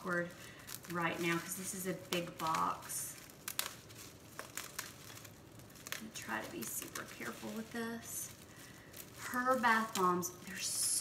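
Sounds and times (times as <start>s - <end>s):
bubble wrap crinkling: 0.0s - 11.0s
scissors cutting plastic: 0.0s - 11.0s.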